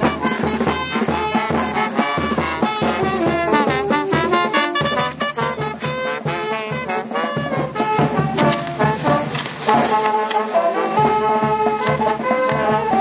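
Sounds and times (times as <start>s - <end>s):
steady drum beat: 0.0s - 13.0s
trombones and trumpets: 0.0s - 13.0s.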